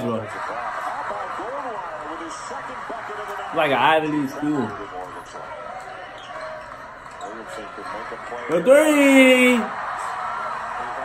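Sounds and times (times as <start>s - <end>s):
commentator talking: 0.0s - 5.5s, 7.8s - 9.7s
arena crowd noise: 0.0s - 11.0s.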